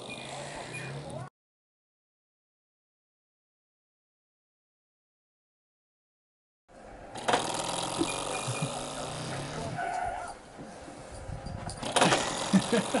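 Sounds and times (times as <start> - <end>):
person laughing: 8.0 - 9.0, 12.0 - 13.0.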